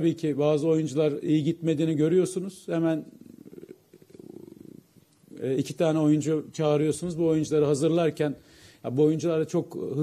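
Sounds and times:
man's creaky throat hesitation: 0:03.2 - 0:04.9.

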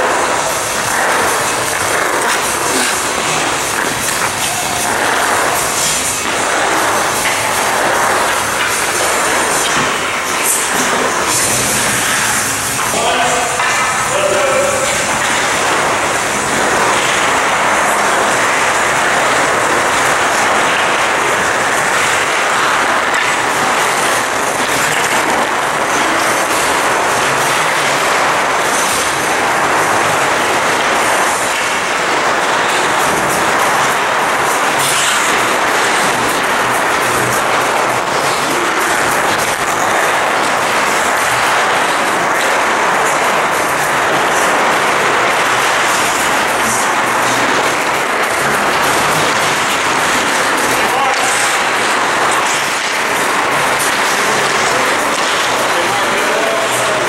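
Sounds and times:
ice rink rush: 0:00.0 - 0:57.0
skate blades scraping ice: 0:00.0 - 0:57.0.

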